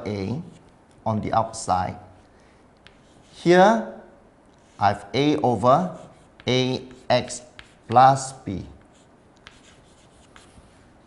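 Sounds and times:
chalk tapping on chalkboard: 2.8 - 3.3, 6.0 - 10.6
chalk scratching on chalkboard: 2.8 - 3.5, 4.6 - 10.8.

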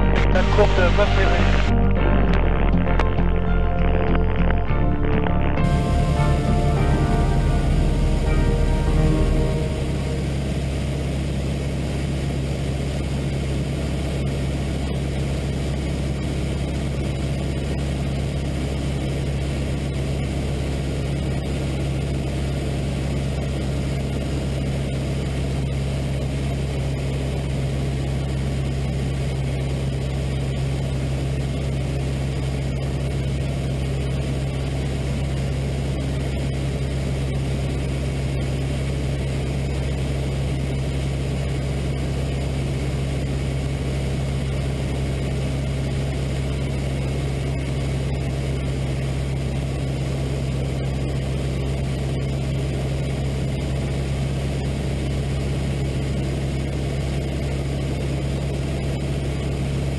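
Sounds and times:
light aircraft engine droning: 5.6 - 59.9.

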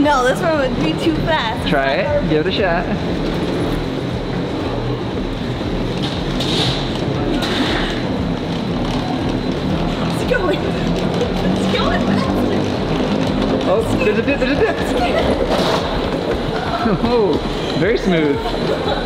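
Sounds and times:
background music: 0.0 - 19.0
moving walkway running: 0.0 - 19.0.

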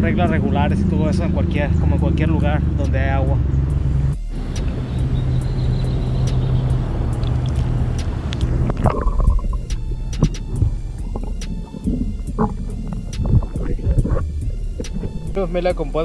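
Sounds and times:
water rushing and sloshing: 5.9 - 15.4
muffled underwater rumble: 6.9 - 16.0
underwater clicks and knocks: 7.2 - 15.4.

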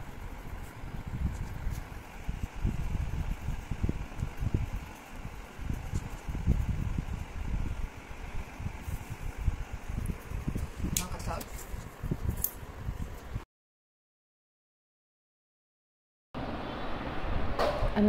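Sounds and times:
wind buffeting microphone: 0.0 - 13.4.

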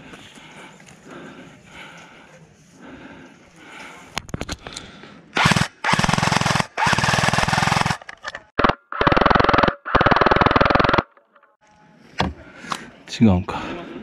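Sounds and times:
airsoft gun full-auto bursts: 5.4 - 11.1.

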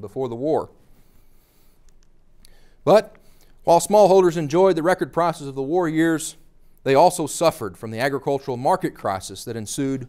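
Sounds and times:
man speaking: 0.0 - 0.8, 2.8 - 10.0.

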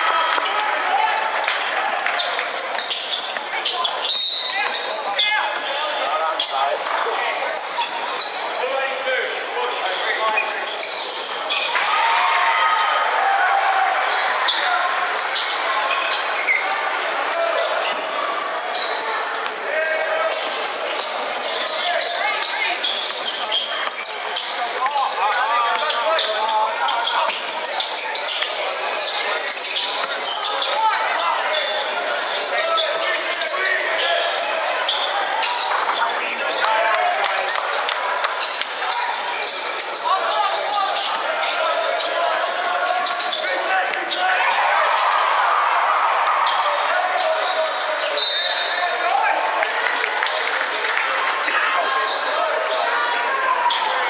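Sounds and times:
players and spectators talking: 0.0 - 54.0.

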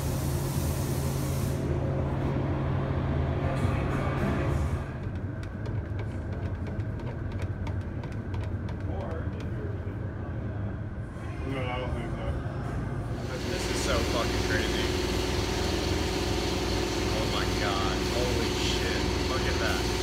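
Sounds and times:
steady low hum: 0.0 - 20.0
paint can clicks and knocks: 5.0 - 9.5.

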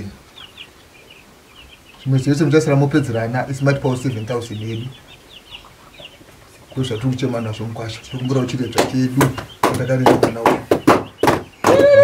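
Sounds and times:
man's voice: 6.8 - 10.7.

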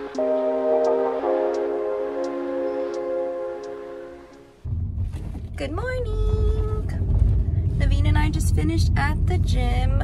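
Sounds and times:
car road and engine rumble: 4.6 - 10.0.

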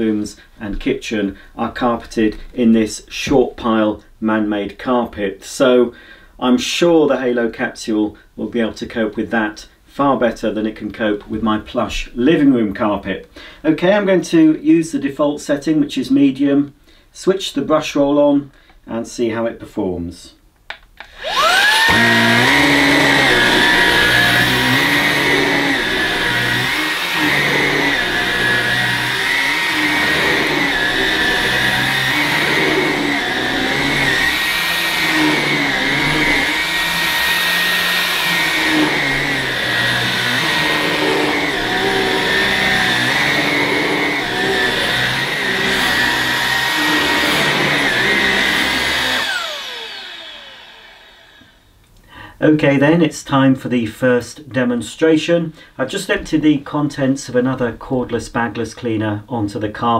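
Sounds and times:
stick vacuum motor whining: 21.0 - 51.8.

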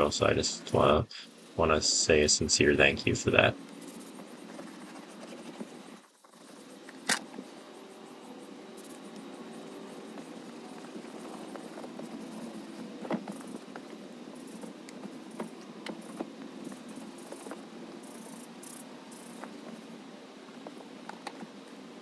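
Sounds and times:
steady low hum: 0.0 - 22.0
towel rubbing on leather seat: 2.7 - 18.4.

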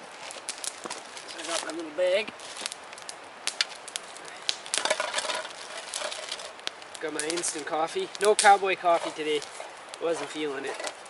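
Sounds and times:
campfire crackling: 0.0 - 11.0.

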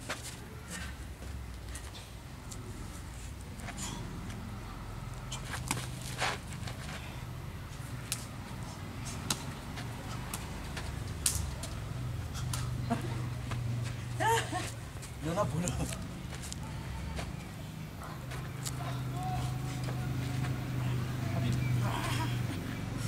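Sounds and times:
slaps and knocks of sparring: 5.4 - 6.8, 9.1 - 11.8.

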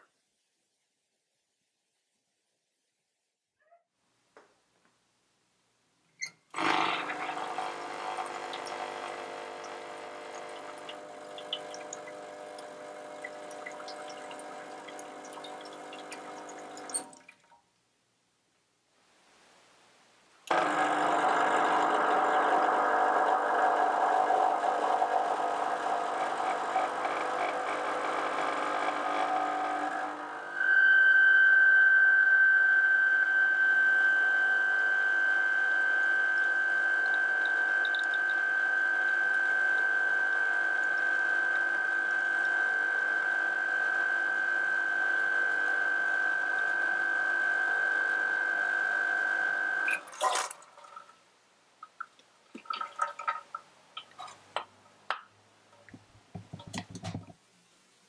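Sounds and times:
espresso machine pump buzzing: 6.6 - 17.1, 20.5 - 30.6, 34.0 - 49.9.

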